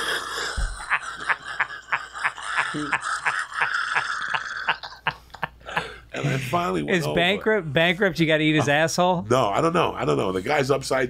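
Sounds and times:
man laughing hard: 0.4 - 6.0.

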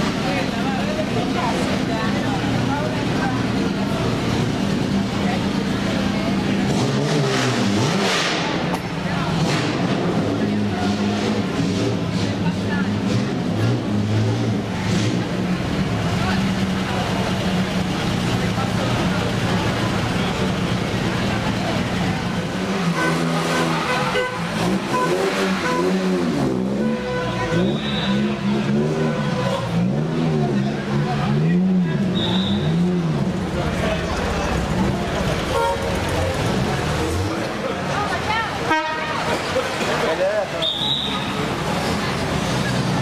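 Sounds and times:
sports car engines running: 0.0 - 43.0.

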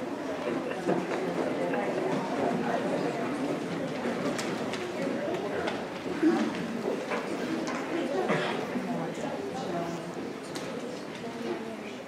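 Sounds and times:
many voices chattering: 0.0 - 12.0.

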